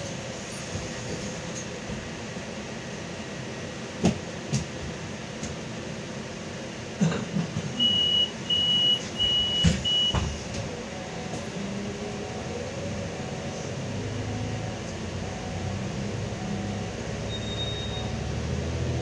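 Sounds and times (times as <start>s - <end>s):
bus engine running: 0.0s - 19.0s
high-pitched warning beeps: 7.8s - 10.3s, 13.2s - 18.3s.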